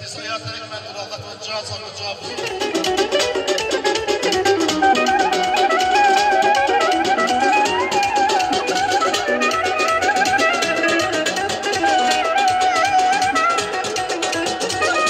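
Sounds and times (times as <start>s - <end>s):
plucked strings: 2.3s - 15.0s
steady drum beat: 2.4s - 15.0s
wavering lead melody: 2.4s - 15.0s.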